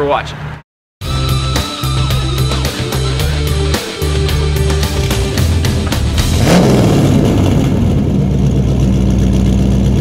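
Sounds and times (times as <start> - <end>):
vehicle engine revving and idling: 1.8 - 10.0.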